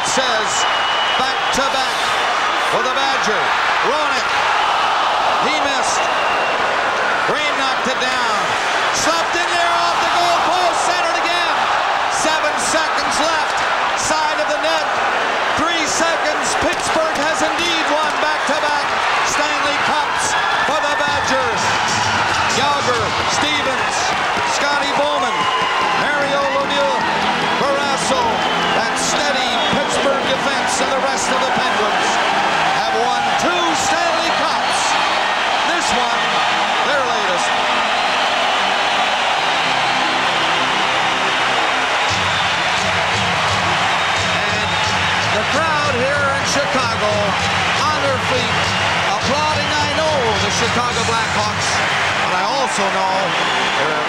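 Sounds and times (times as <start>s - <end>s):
crowd cheering: 0.0s - 54.0s
sharp claps and bangs: 21.1s - 26.3s.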